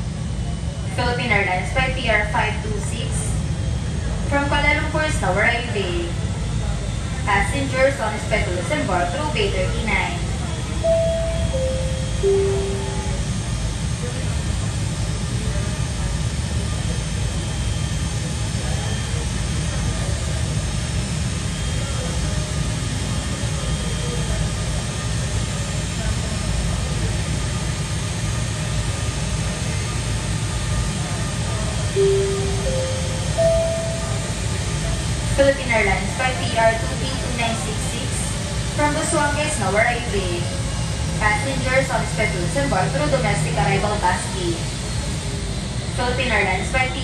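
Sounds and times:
jet airliner taxiing rumble: 0:00.0 - 0:47.0
three-note public-address chime: 0:10.8 - 0:13.5, 0:32.0 - 0:35.0.

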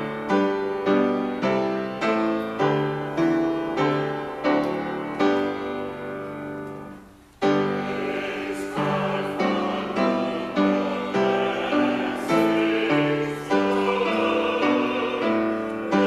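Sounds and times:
piano chords: 0:00.0 - 0:16.0
choir singing: 0:07.4 - 0:16.0.

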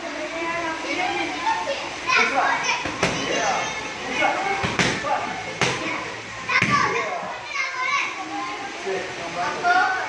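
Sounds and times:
children chattering and calling: 0:00.0 - 0:10.0.

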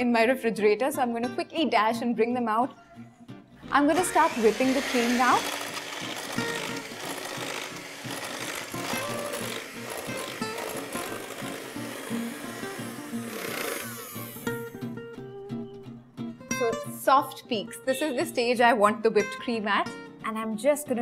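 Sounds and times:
electric hand mixer whipping cream: 0:03.9 - 0:14.8.

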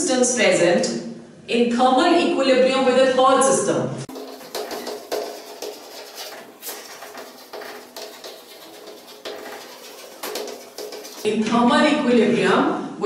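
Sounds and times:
chalk writing on chalkboard: 0:04.1 - 0:11.3.

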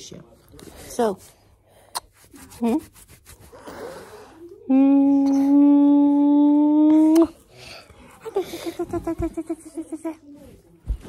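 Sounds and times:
person humming: 0:04.7 - 0:07.3
smacking kiss: 0:07.0 - 0:07.4.

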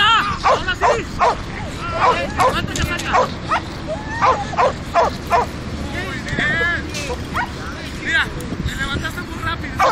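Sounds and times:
dog barking: 0:00.4 - 0:01.4, 0:02.0 - 0:03.6, 0:04.2 - 0:05.5
dog yelping: 0:00.4 - 0:01.4, 0:02.0 - 0:05.5, 0:07.3 - 0:07.6.

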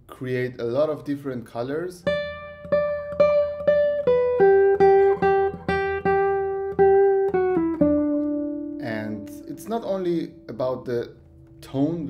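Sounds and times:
classical guitar fingerstyle notes: 0:02.0 - 0:12.0.

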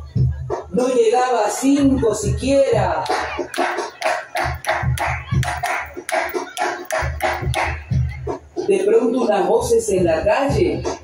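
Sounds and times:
low drum beat: 0:01.8 - 0:08.6
rhythmic hand clapping: 0:02.9 - 0:08.4.

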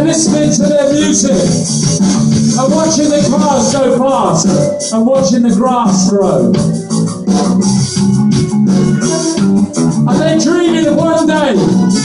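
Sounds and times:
live rock band playing: 0:00.0 - 0:12.0
sustained keyboard chords: 0:00.0 - 0:12.0.

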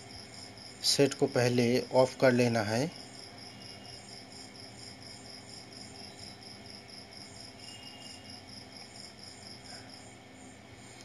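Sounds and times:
insect chirping: 0:00.0 - 0:11.0
low room hiss: 0:00.0 - 0:11.0.

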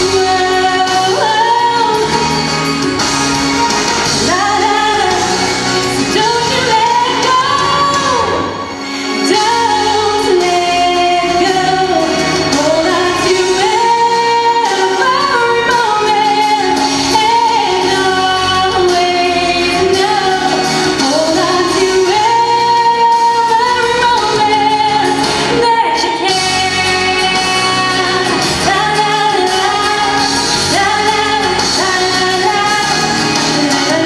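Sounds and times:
instrumental backing music: 0:00.0 - 0:34.0
woman singing into microphone: 0:00.0 - 0:34.0.

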